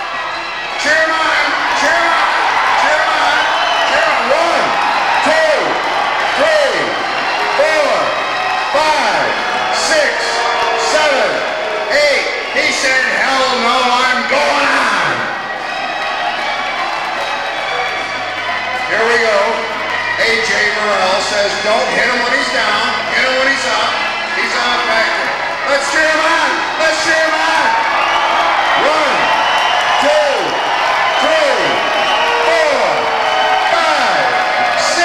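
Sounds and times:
crowd yelling and whooping: 0:00.0 - 0:35.0.

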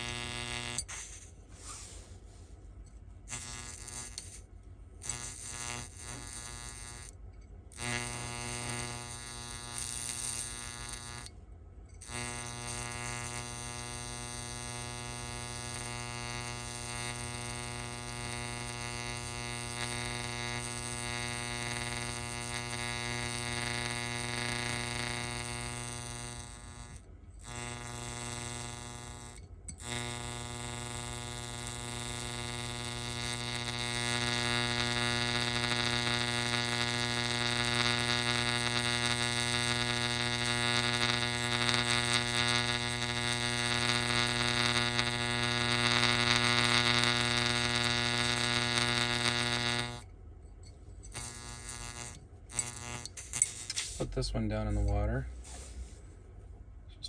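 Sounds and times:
electric arc buzzing: 0:00.0 - 0:02.0, 0:03.2 - 0:50.1, 0:51.0 - 0:55.2.

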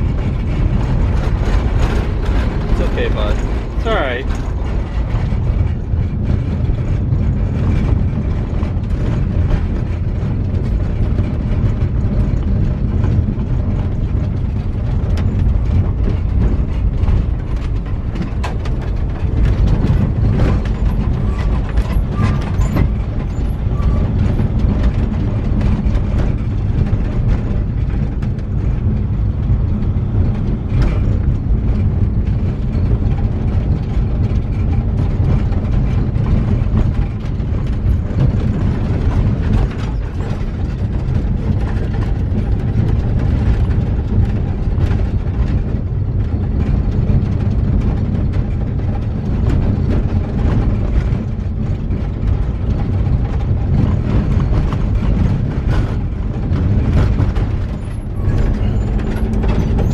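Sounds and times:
rattling and clicking in cab: 0:00.0 - 0:59.9
tyres and engine rumble: 0:00.0 - 0:59.9.

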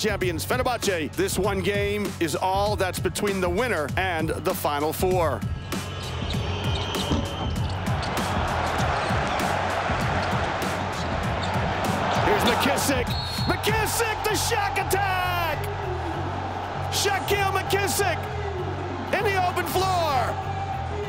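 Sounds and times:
background music: 0:00.0 - 0:21.0
sneakers squeaking on court: 0:05.4 - 0:13.7
crowd din: 0:05.7 - 0:21.0
basketball bouncing: 0:06.3 - 0:12.3.

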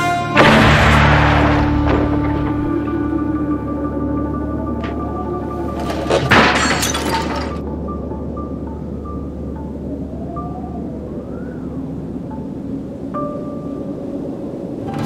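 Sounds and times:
western film score: 0:00.0 - 0:15.0
loud shattering crash: 0:00.4 - 0:02.7, 0:05.8 - 0:07.6.

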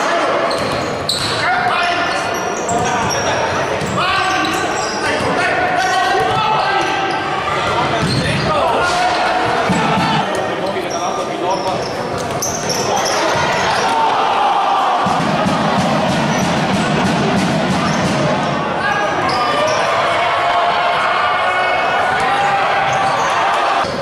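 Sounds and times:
shouting voices: 0:04.0 - 0:10.4, 0:12.8 - 0:24.0.

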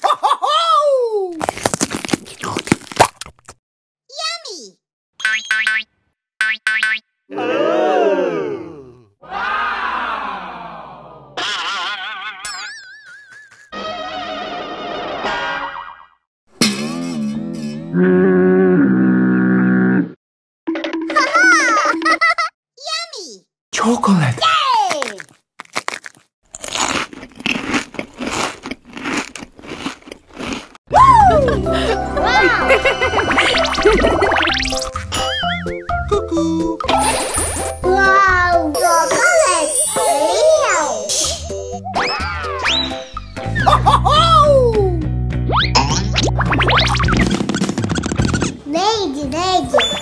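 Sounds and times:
crunchy chewing of snack: 0:01.3 - 0:03.6, 0:24.8 - 0:30.8.

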